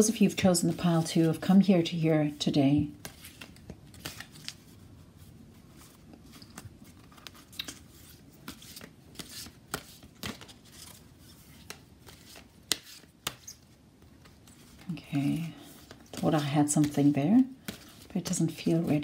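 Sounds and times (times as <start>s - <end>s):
cards being shuffled by hand: 2.9s - 19.0s.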